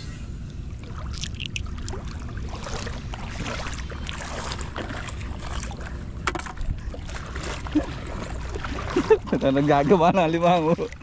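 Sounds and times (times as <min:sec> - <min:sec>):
shallow water splashing: 0:00.7 - 0:11.0.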